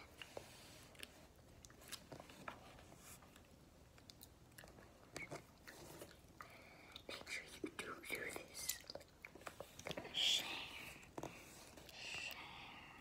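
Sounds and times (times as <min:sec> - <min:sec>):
whispering: 0:06.9 - 0:08.9, 0:09.9 - 0:11.1, 0:11.9 - 0:13.0
chewing mouth clicks and smacks: 0:08.6 - 0:09.9.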